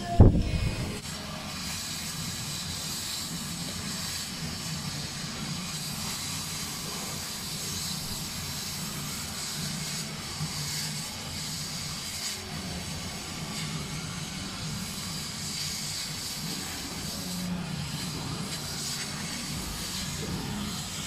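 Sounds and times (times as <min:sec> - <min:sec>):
low machine hum: 0:00.0 - 0:01.2
laser cutter hissing: 0:00.0 - 0:21.0.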